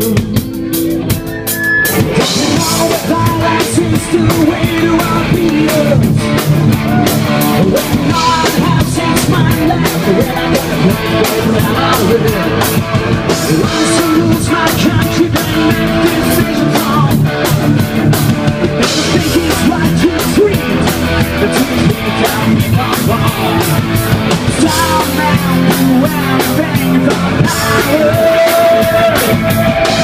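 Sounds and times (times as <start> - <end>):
drum kit: 0.0 - 30.0
electric guitar: 0.0 - 30.0
person singing into a microphone: 2.1 - 30.0.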